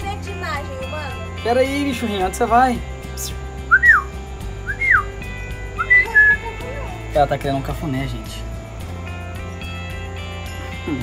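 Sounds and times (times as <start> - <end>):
background music: 0.0 - 11.0
short whistled notes: 3.7 - 5.1, 5.8 - 6.4.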